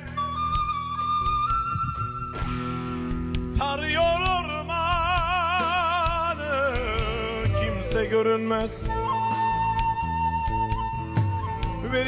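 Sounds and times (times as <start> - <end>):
flute holding long note: 0.0 - 3.0, 7.2 - 12.0
folk band accompaniment: 0.0 - 12.0.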